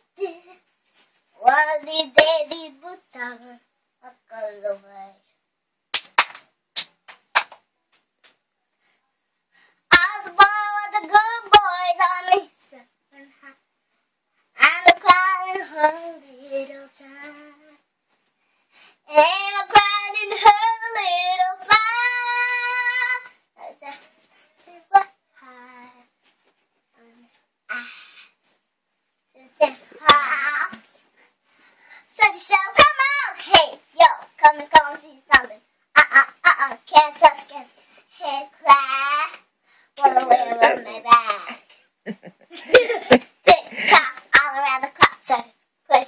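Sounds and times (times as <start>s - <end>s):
girl singing: 1.4s - 5.2s, 9.9s - 13.6s, 14.6s - 17.8s, 19.1s - 26.2s, 29.4s - 30.9s, 32.0s - 39.4s, 40.0s - 41.6s, 42.6s - 45.6s.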